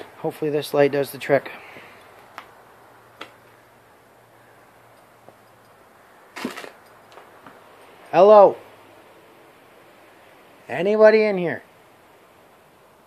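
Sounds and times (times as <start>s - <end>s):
faint low hum: 0.0s - 13.0s
faint clicks: 4.9s - 5.8s
crunching scuffle on debris: 6.4s - 6.8s.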